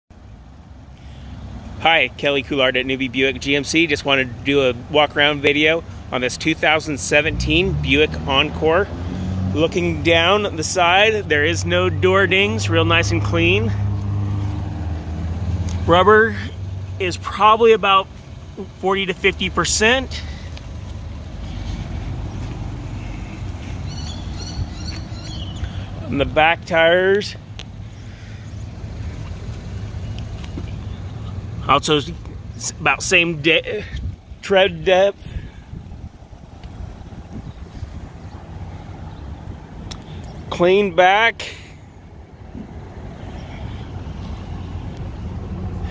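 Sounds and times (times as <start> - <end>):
low outdoor rumble: 0.1 - 45.9
man's voice: 15.8 - 20.4, 26.0 - 27.4, 31.6 - 35.3
wind buffeting microphone: 35.2 - 38.2.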